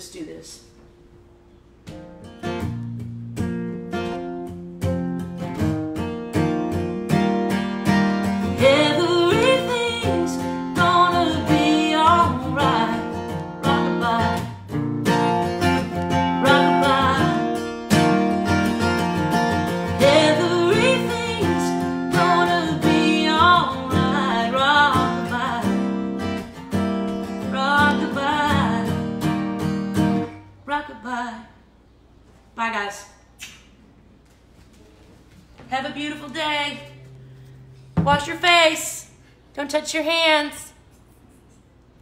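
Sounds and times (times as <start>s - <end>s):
acoustic guitar strumming: 1.8s - 30.6s
woman singing a country song: 8.2s - 14.8s, 15.5s - 18.3s, 19.6s - 29.4s, 30.0s - 31.6s, 35.7s - 37.0s, 38.0s - 40.8s.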